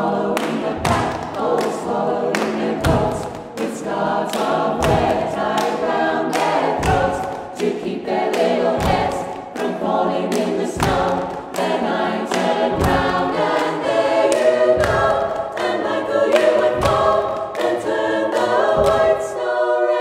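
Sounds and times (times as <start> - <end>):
a cappella choir singing: 0.0 - 20.0.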